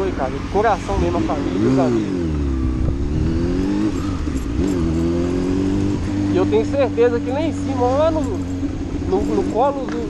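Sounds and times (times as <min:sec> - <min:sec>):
motorcycle engine revving: 0:00.0 - 0:10.0.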